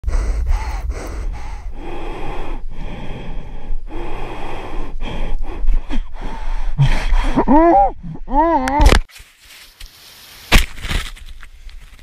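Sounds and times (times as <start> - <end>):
wind rumbling on microphone: 0.0 - 6.8
heavy rapid breathing: 0.0 - 7.5.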